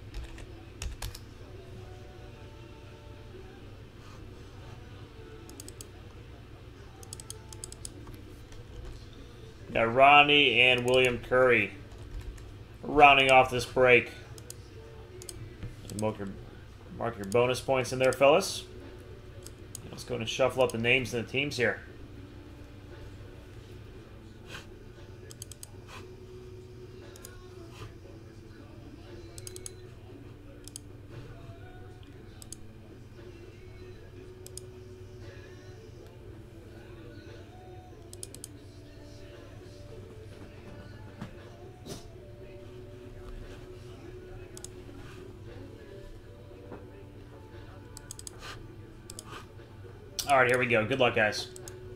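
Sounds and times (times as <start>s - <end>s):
low steady hum: 0.0s - 51.9s
typing on computer keyboard: 0.1s - 1.2s, 7.0s - 7.9s, 29.4s - 29.7s, 48.0s - 48.3s
mouse and keyboard clicks: 7.0s - 8.1s, 29.4s - 29.8s, 48.0s - 48.4s, 49.1s - 49.4s.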